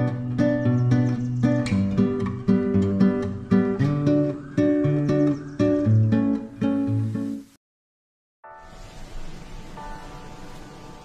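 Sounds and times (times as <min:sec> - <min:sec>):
acoustic guitar strumming chords: 0:00.0 - 0:07.4, 0:08.5 - 0:11.0.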